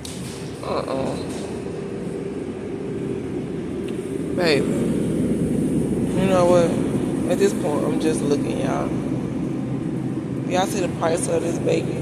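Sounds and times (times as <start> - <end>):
refrigerator and ventilation hum: 0.0 - 12.0.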